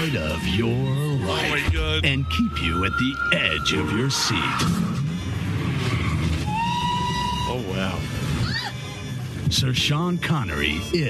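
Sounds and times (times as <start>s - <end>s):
high whistling tone: 0.4s - 9.2s
low rumble: 0.5s - 11.0s.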